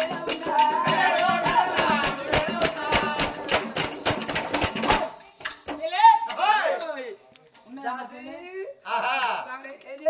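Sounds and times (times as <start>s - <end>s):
folk drum and jingles: 0.0s - 6.7s.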